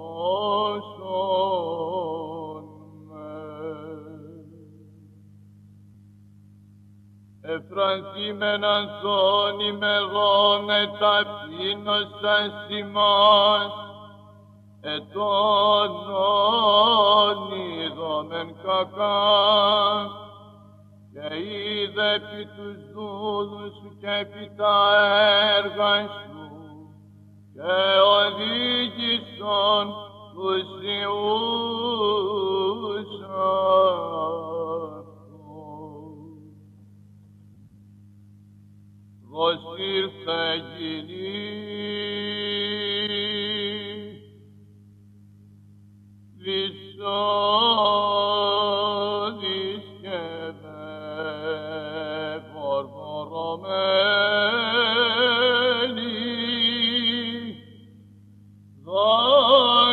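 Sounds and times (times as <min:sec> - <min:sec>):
low vocal drone: 0:00.0 - 0:05.1, 0:07.4 - 0:36.6, 0:39.2 - 0:44.4, 0:46.4 - 0:57.8, 0:58.8 - 0:59.9
steady low hum: 0:00.0 - 0:59.9
man chanting a hymn: 0:07.4 - 0:14.0, 0:14.8 - 0:20.2, 0:21.2 - 0:26.9, 0:27.6 - 0:36.5, 0:39.3 - 0:44.3, 0:46.4 - 0:57.6.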